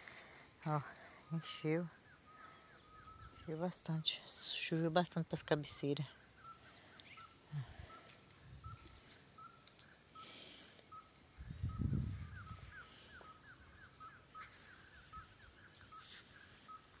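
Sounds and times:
bird chirping: 0.7 - 17.0.

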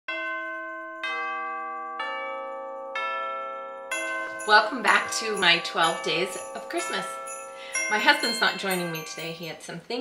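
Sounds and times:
bell-like chime chords: 0.1 - 9.8.

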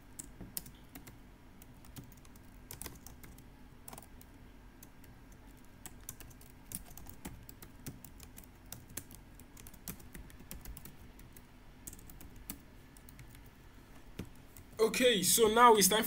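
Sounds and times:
computer keyboard keystrokes: 0.2 - 13.5.

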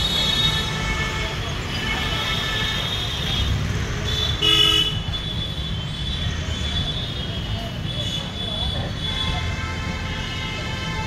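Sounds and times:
street traffic: 0.0 - 11.0
vehicle horn honking: 4.1 - 5.4.

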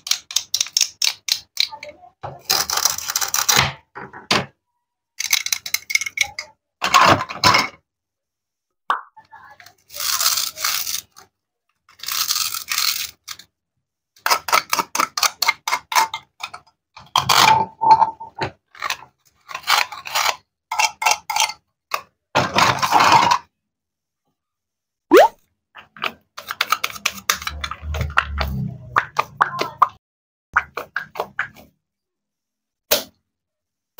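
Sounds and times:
toy pieces clicking and knocking: 0.0 - 3.6, 5.2 - 6.6, 9.7 - 13.5, 14.2 - 17.4, 25.1 - 29.8.

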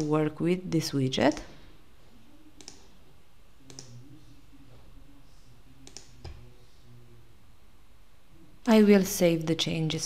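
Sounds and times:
faint low hum: 0.0 - 10.0
computer mouse clicks: 1.3 - 1.5, 2.6 - 2.9, 3.7 - 4.0, 5.8 - 6.4.

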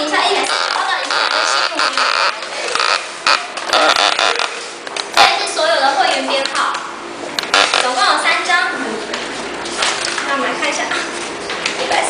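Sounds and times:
plastic bag rustling and creaking: 0.0 - 4.9, 7.4 - 8.0.

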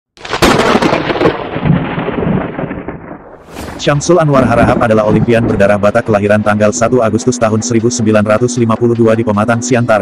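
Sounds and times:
thunder-like boom: 0.4 - 6.8.

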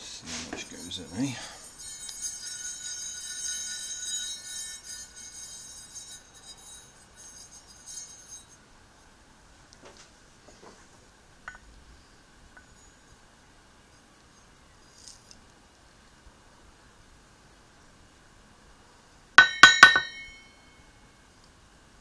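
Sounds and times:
metal pan clinking on cup: 19.4 - 20.4.

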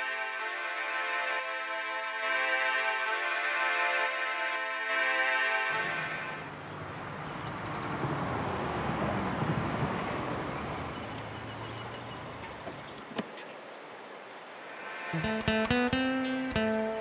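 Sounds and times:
music: 0.0 - 6.6, 14.8 - 17.0
bird chirping: 5.7 - 14.5, 15.1 - 17.0
car engine driving slowly: 6.0 - 13.6.

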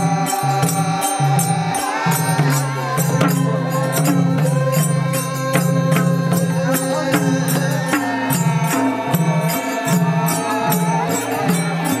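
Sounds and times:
hand drums beating: 0.0 - 12.0
men chanting in unison: 0.0 - 12.0.

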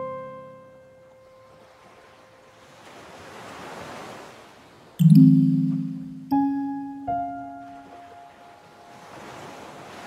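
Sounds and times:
piano note: 5.0 - 8.6.

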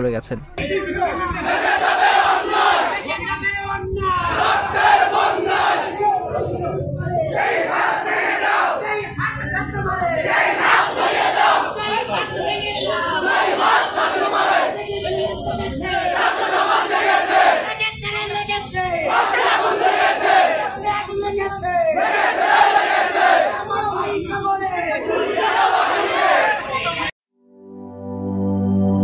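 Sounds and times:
crowd chanting slogans: 0.6 - 27.1.

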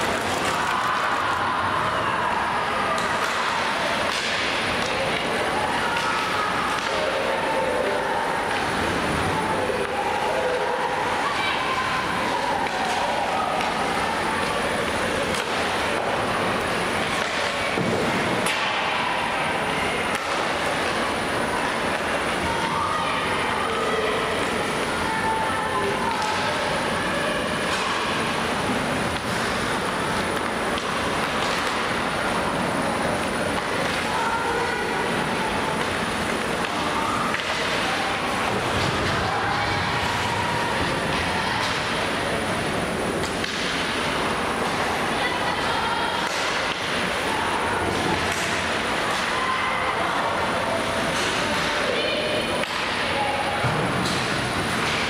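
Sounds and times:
rushing noise of skating: 0.0 - 55.0
stick and puck clicks: 30.4 - 32.0, 47.9 - 49.4.

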